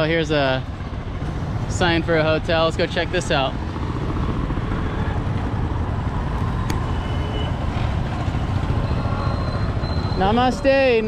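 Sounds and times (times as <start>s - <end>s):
motorbikes and scooters passing: 0.0s - 11.0s.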